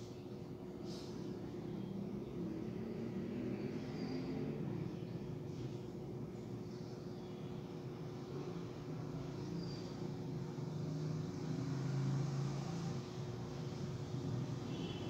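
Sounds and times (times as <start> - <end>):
faint continuous hum: 0.0 - 15.0.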